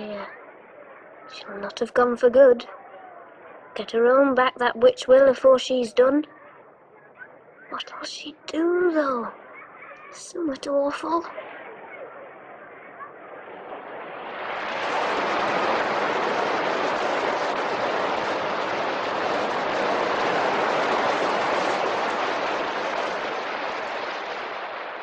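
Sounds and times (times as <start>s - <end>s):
sea surf rushing: 7.6s - 25.0s.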